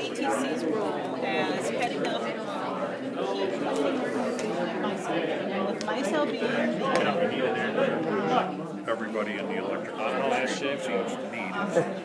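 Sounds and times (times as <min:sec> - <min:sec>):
overlapping voices chatter: 0:00.0 - 0:12.0.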